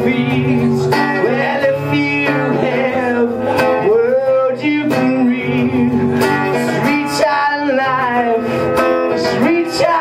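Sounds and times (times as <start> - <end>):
acoustic guitar strumming: 0.0 - 10.0
man singing: 0.0 - 10.0.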